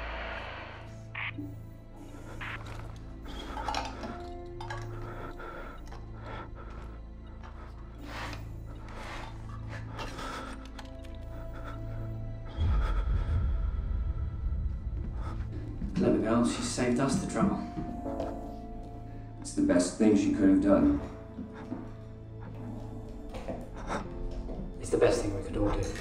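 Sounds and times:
low rumble: 0.0s - 1.3s, 12.4s - 16.6s
film score drone: 0.0s - 19.6s
metal tins clinking: 3.3s - 5.1s.

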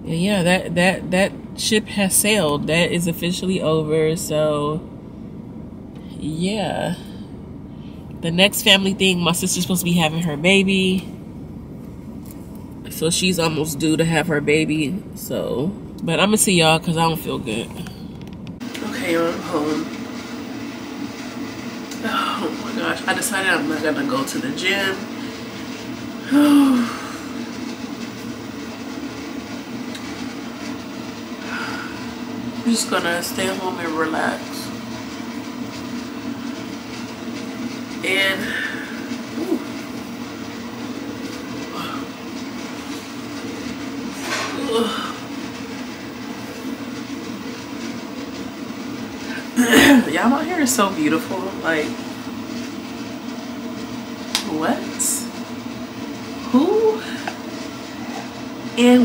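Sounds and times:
air vent blowing: 0.0s - 59.0s
steady mechanical hum: 0.0s - 59.0s.

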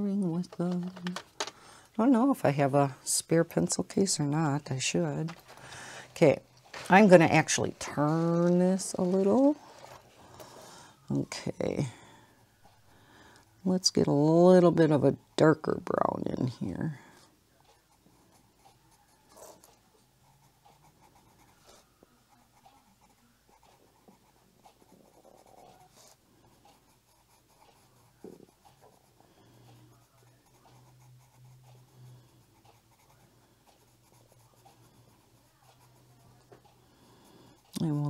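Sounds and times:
colored pencil scratching on paper: 2.0s - 10.2s, 17.6s - 38.0s.

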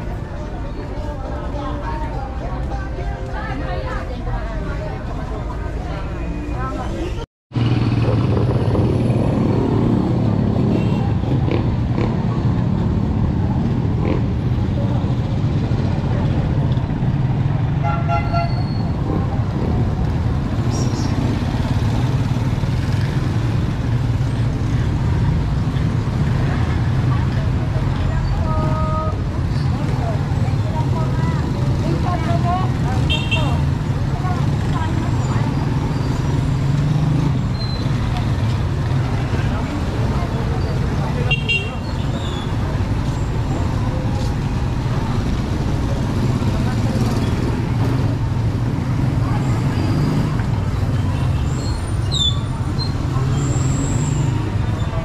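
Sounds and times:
murmur of voices: 0.0s - 8.4s, 18.7s - 55.0s
motorcycle engines running: 7.6s - 17.8s, 18.8s - 55.0s
horn toots: 17.8s - 18.9s.

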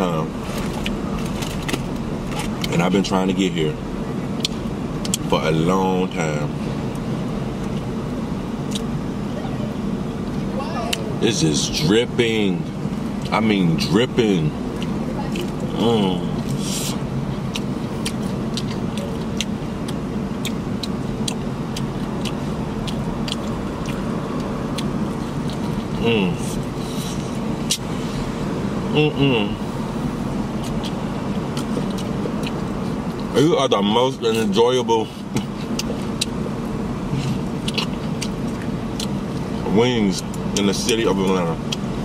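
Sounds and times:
low rumble inside car: 0.0s - 42.0s
chewing crispy fried chicken: 14.7s - 27.9s, 30.5s - 33.3s, 34.3s - 39.6s, 41.2s - 41.9s.

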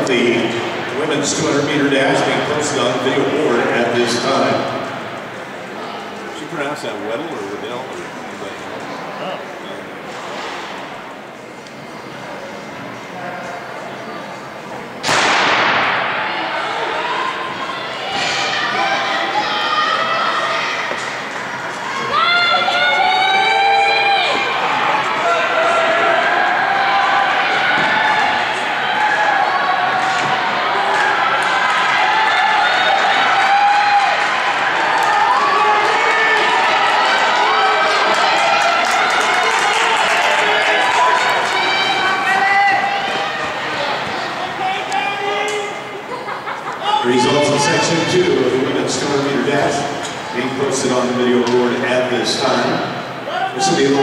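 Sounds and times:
spectators shouting and cheering: 14.7s - 54.0s
starting pistol shot echoing: 15.0s - 16.1s.

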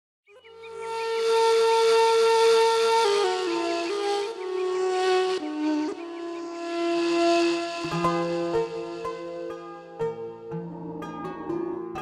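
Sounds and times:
reed flute long breathy note: 0.3s - 9.7s.

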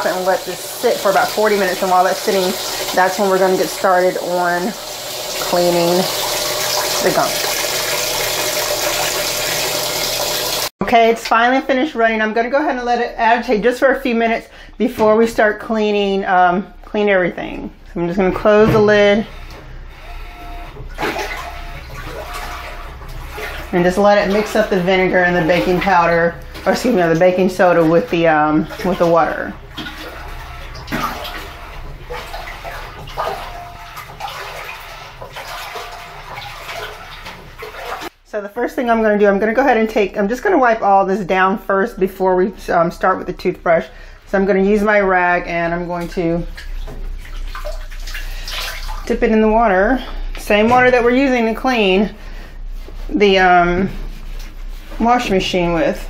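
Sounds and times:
washing machine water churning: 0.0s - 11.1s, 12.0s - 56.0s.

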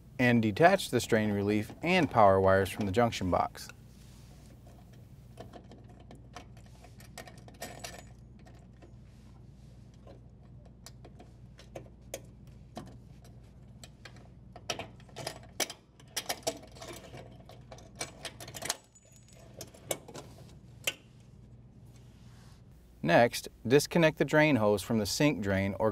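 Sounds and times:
small clicks and rattles of wires: 4.6s - 9.0s, 9.9s - 21.0s.

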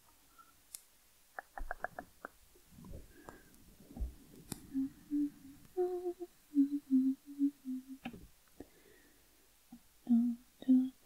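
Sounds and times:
woman humming a slow tune: 4.7s - 8.1s, 9.7s - 11.0s.

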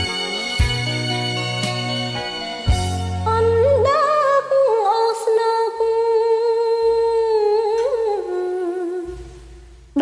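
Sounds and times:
soft low musical backing: 0.0s - 10.0s.

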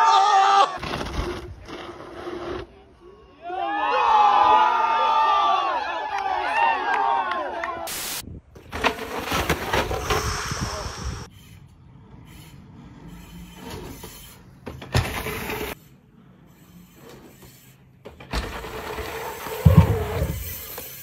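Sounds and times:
bike tyres rolling over dirt: 17.4s - 21.0s.

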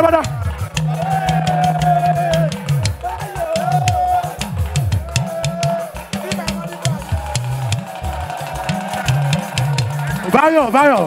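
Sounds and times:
bass line: 0.0s - 10.4s
light percussion: 0.0s - 11.0s.

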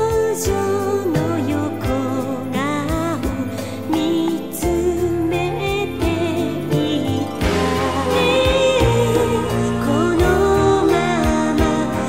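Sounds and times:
pop band with drum beat: 0.0s - 12.0s
woman singing with vibrato: 0.0s - 12.0s.

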